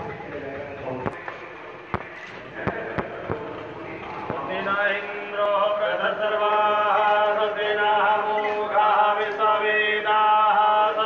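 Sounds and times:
person chanting mantras: 0.4s - 11.0s.

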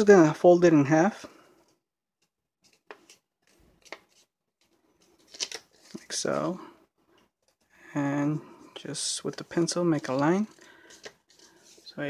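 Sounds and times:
paper crinkles and taps: 2.2s - 6.0s, 9.3s - 11.8s.

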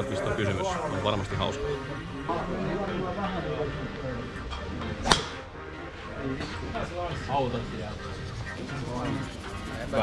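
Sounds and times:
golf club striking ball: 5.0s - 5.5s.

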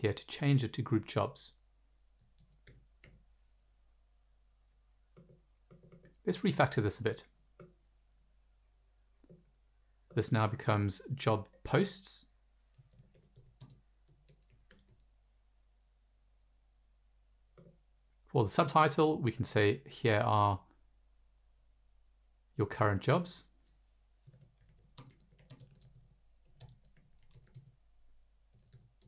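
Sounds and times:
computer keyboard typing: 2.2s - 3.2s, 5.2s - 6.2s, 12.7s - 15.1s, 24.2s - 27.8s, 28.5s - 29.0s.

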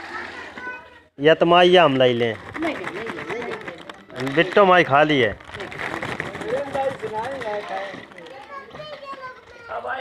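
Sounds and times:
children talking and calling: 0.0s - 10.0s.

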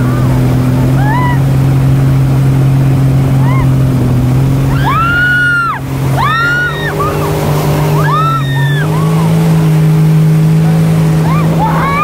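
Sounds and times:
jet ski engine drone: 0.0s - 12.0s
riders squealing: 4.7s - 9.4s, 11.2s - 12.0s.

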